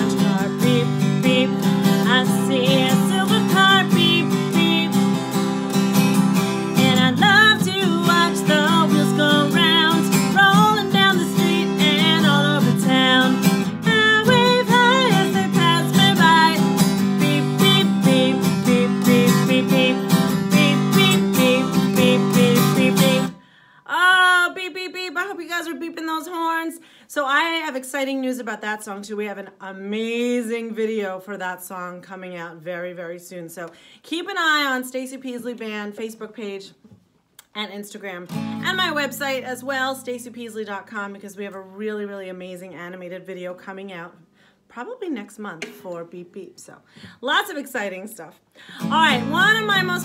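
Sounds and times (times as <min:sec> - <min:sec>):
acoustic guitar strumming: 0:00.0 - 0:23.4, 0:38.3 - 0:39.5, 0:48.7 - 0:50.0
woman singing: 0:00.0 - 0:28.5, 0:38.4 - 0:40.6, 0:48.7 - 0:50.0.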